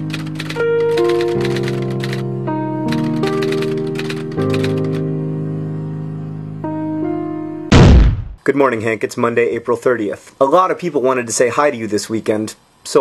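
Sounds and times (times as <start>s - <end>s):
rapid typewriter-like clicking: 0.0s - 2.2s, 2.9s - 5.0s
sustained music chords: 2.2s - 7.7s.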